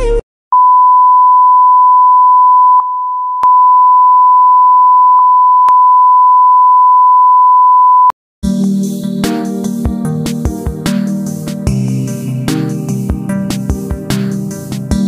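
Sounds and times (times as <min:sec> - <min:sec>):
high electronic beep tone: 0:00.6 - 0:08.1.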